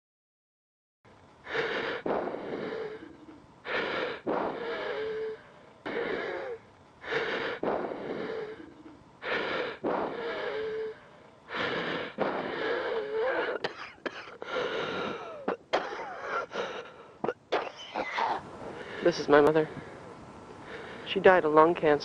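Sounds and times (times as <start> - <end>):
wheezing labored breathing: 1.4 - 21.1.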